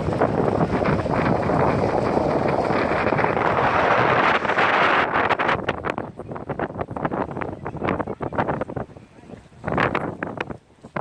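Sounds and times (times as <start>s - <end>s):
wind blowing across microphone: 0.0s - 11.0s.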